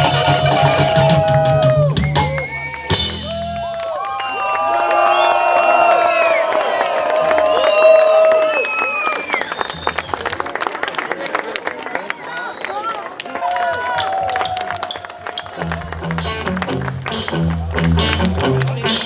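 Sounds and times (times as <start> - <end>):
audience cheering and whistling: 0.0 - 10.6, 12.2 - 16.0
people clapping: 0.6 - 19.0.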